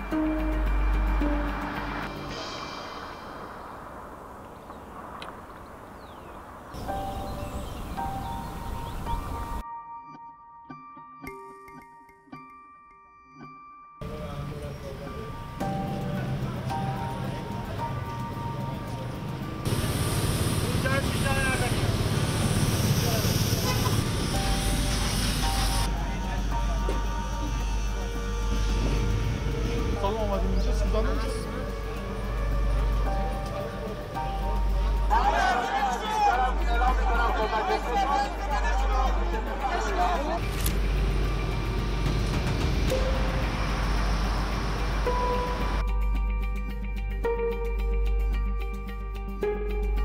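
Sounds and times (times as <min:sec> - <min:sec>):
soft background music: 0:00.0 - 0:03.4, 0:06.8 - 0:19.8, 0:24.2 - 0:50.0
traffic: 0:00.0 - 0:09.6, 0:14.0 - 0:45.9
cars driving past: 0:00.2 - 0:08.7, 0:15.2 - 0:25.9, 0:31.3 - 0:45.8
steady hiss: 0:02.0 - 0:08.8, 0:19.7 - 0:25.9
people's voices: 0:33.2 - 0:40.6.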